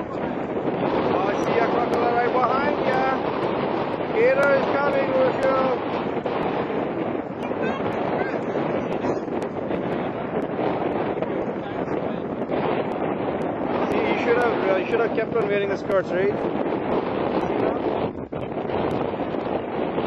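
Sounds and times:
shallow surf washing: 0.0s - 20.0s
wind buffeting microphone: 0.0s - 20.0s
child calling out: 7.4s - 9.3s.

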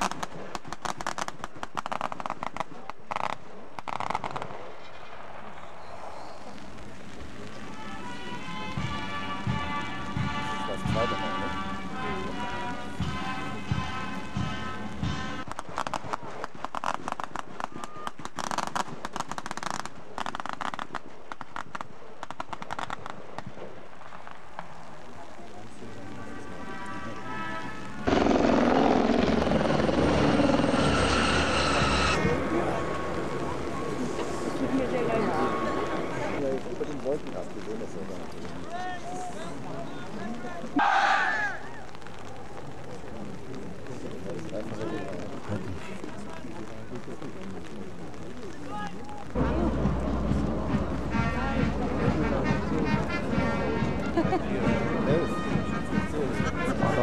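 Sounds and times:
rifle fire crackling: 0.0s - 57.0s
loud steady rushing noise: 6.0s - 15.7s, 24.8s - 40.9s, 41.6s - 57.0s
military band brass and bass drum: 7.6s - 15.9s, 49.4s - 57.0s.

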